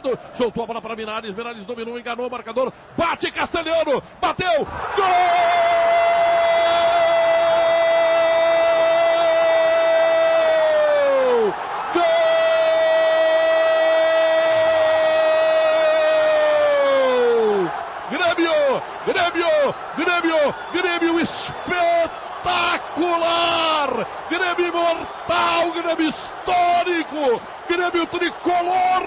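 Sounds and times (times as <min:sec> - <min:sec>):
rapid excited commentary: 0:00.0 - 0:10.4, 0:16.7 - 0:29.0
commentator's long goal shout: 0:04.3 - 0:29.0.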